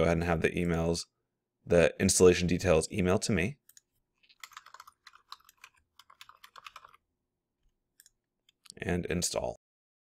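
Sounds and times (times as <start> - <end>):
typing on computer keyboard: 3.7 - 7.0.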